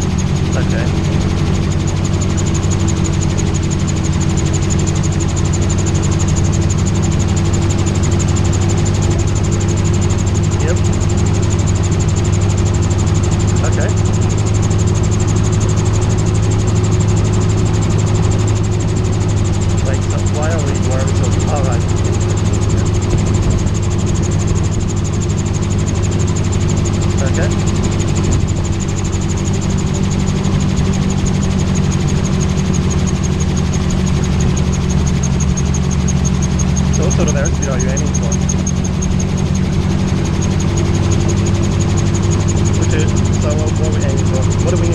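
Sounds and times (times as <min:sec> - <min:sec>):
autogyro engine running: 0:00.0 - 0:44.9.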